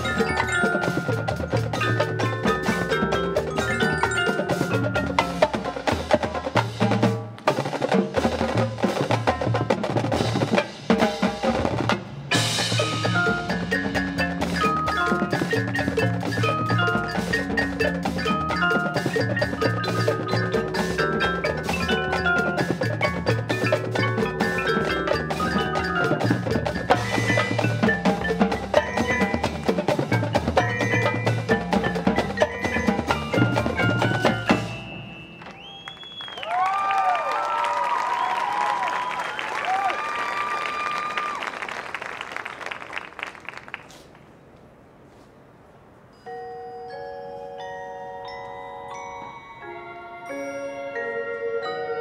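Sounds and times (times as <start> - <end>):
sliding wavering high tones: 0.0 - 5.5, 46.1 - 52.0
sustained mallet keyboard notes: 0.0 - 7.0, 12.3 - 35.7, 46.1 - 52.0
marching band drums and mallets: 0.0 - 39.9, 46.2 - 52.0.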